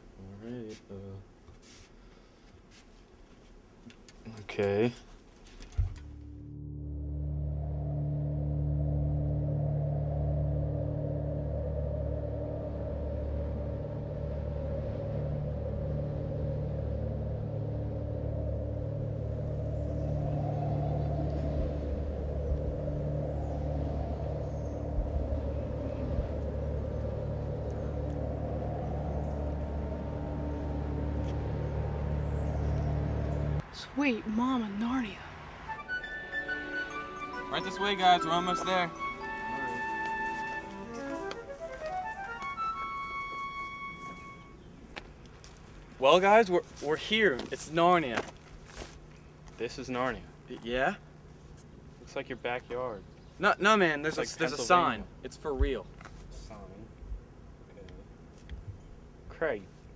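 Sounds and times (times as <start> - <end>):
low droning rumble: 5.9 - 35.6.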